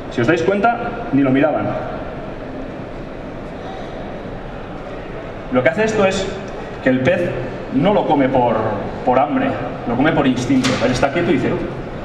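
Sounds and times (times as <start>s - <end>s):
exhibition hall background din: 0.0s - 12.0s.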